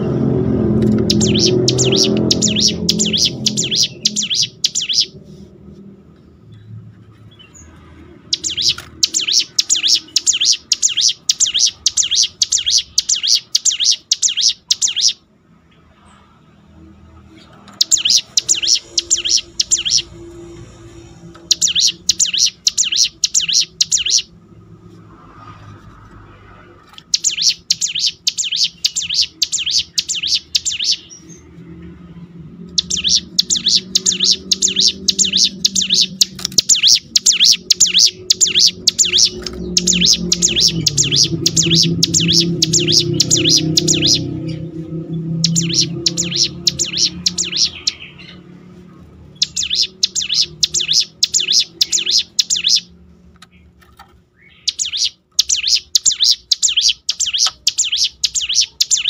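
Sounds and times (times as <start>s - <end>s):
bird rattling song: 0.7s - 5.2s, 7.4s - 15.2s, 17.5s - 24.3s, 26.8s - 31.4s, 32.7s - 48.4s, 49.3s - 59.0s.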